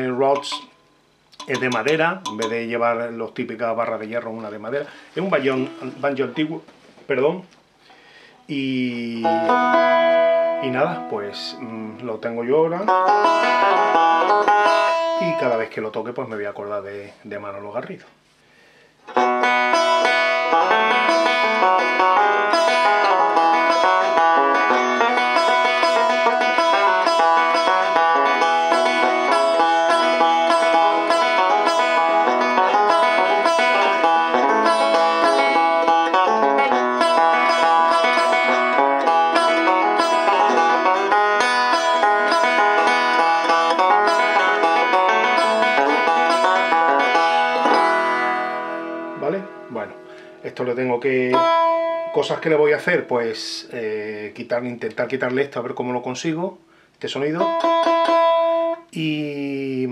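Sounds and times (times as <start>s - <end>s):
banjo picking: 0.0s - 3.2s, 3.8s - 6.6s, 8.7s - 15.8s, 19.1s - 53.5s, 57.4s - 58.9s.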